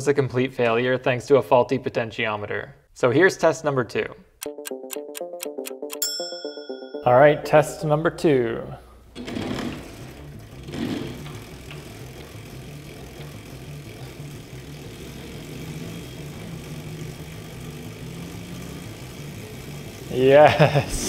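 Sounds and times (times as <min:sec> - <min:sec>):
electric motor hum: 0:09.2 - 0:21.0.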